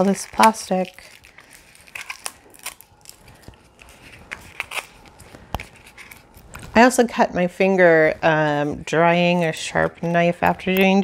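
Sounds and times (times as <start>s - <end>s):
plastic wrapping crackling: 0.0s - 7.0s.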